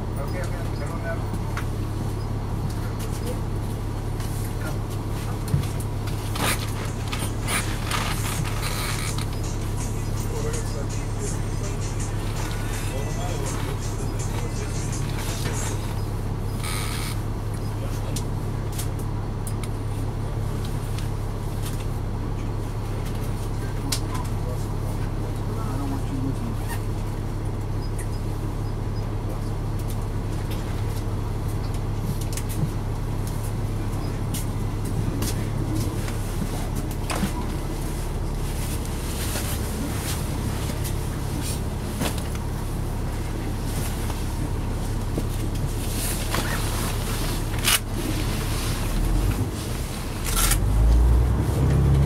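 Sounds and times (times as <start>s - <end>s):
bus engine idling: 0.0s - 52.0s
indistinct voices: 6.4s - 17.2s
background music: 9.5s - 15.8s.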